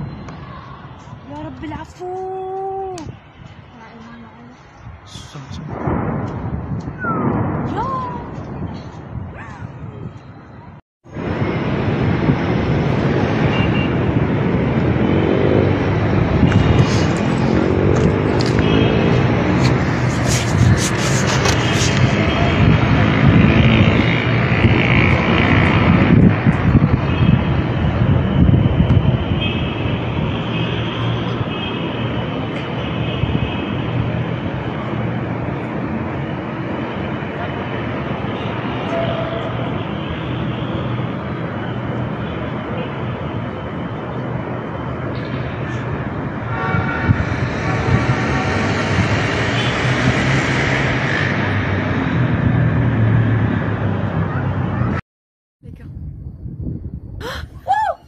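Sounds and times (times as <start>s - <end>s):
loud outdoor rushing noise: 0.0s - 55.0s.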